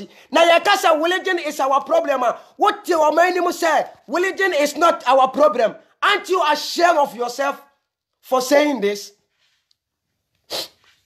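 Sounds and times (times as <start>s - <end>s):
man speaking: 0.0s - 9.2s
man's sharp burst of breath: 10.4s - 10.9s.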